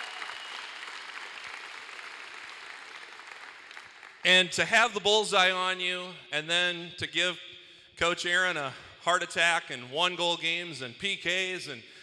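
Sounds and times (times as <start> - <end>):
audience applause: 0.0 - 4.2.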